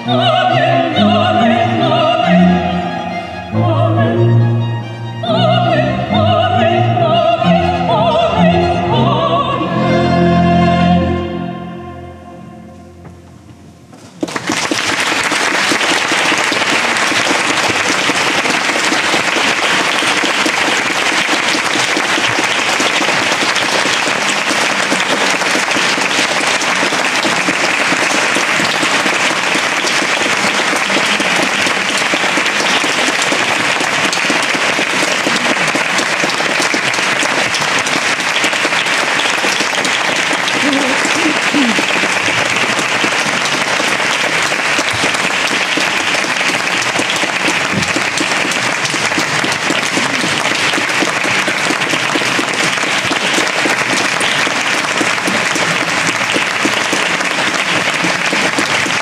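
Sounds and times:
audience applauding: 0.0s - 0.7s, 14.0s - 59.0s.

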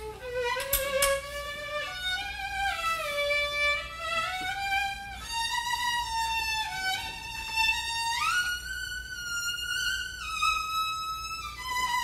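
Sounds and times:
solo violin slow melody: 0.0s - 12.0s.

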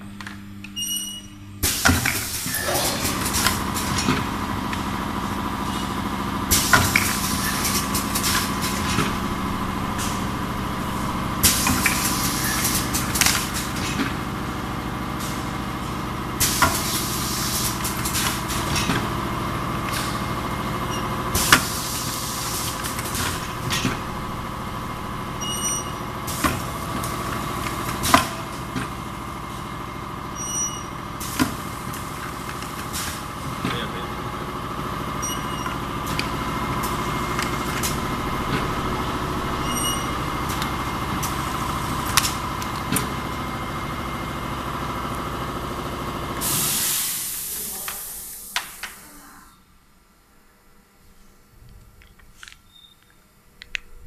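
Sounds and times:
machine motor hum: 1.4s - 46.6s
pneumatic air bursts: 46.4s - 49.3s.

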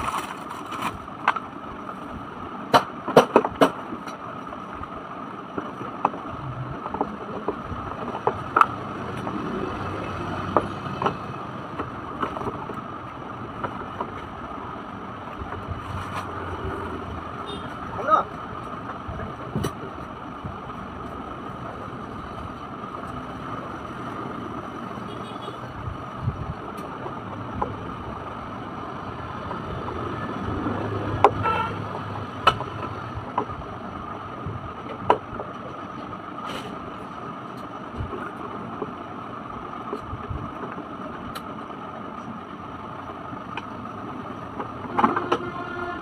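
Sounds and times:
steady background noise: 0.0s - 46.0s.

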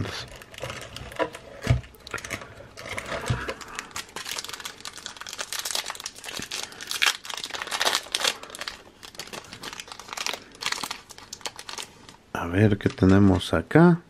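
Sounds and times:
card pack wrapper crinkling: 0.0s - 13.6s.

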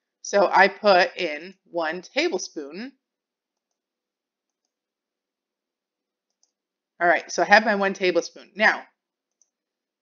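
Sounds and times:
computer mouse clicks: 3.5s - 4.8s, 6.2s - 6.6s, 9.2s - 9.7s.

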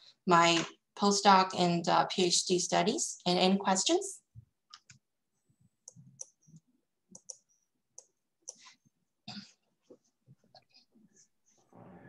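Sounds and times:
faint irregular clicks: 5.8s - 8.7s.

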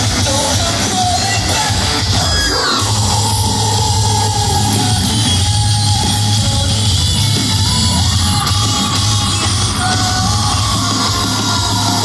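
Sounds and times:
heavy rock band playing live: 0.0s - 12.0s.

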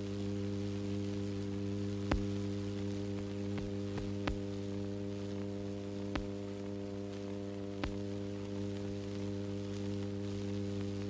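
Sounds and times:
electrical hum: 0.0s - 11.0s
faint hiss: 0.0s - 11.0s.

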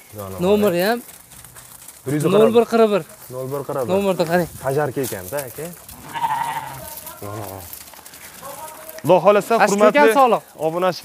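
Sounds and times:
sheep bleating: 5.9s - 7.8s.

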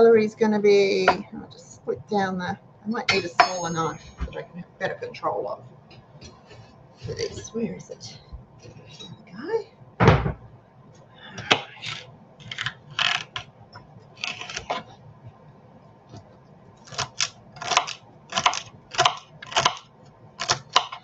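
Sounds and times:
knife chopping on wooden board: 17.0s - 19.8s, 20.4s - 21.0s.

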